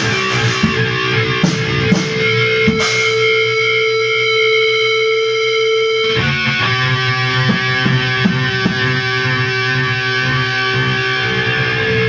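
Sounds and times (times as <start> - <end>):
distorted electric guitar chords: 0.0 - 12.0.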